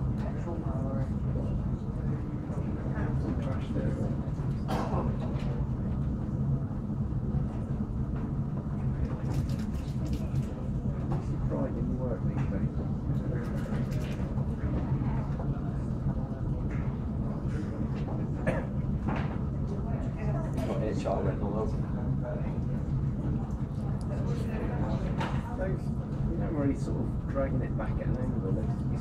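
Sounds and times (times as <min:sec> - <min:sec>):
low mechanical hum: 0:00.0 - 0:29.0.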